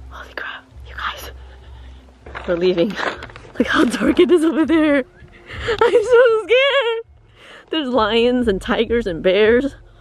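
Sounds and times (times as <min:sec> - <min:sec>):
low rumble: 0:00.0 - 0:10.0
person whispering: 0:00.1 - 0:01.5.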